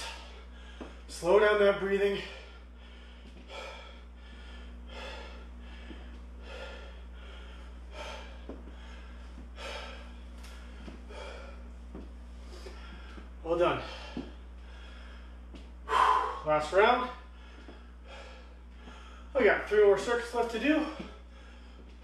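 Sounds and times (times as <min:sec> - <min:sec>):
man breathing deeply: 0:00.0 - 0:19.4, 0:20.7 - 0:22.0
steady low hum: 0:00.0 - 0:22.0.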